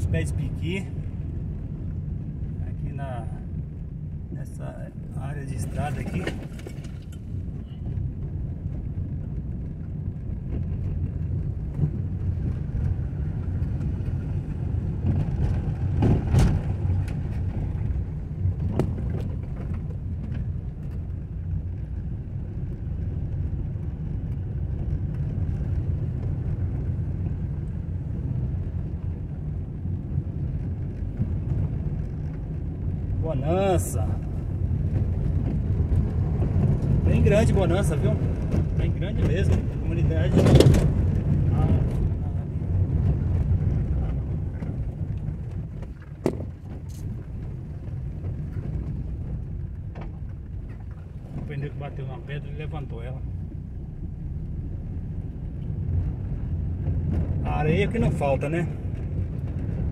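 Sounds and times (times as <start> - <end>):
car rumbling on dirt road: 0.0 - 59.9
knocks from bumps: 46.2 - 46.9.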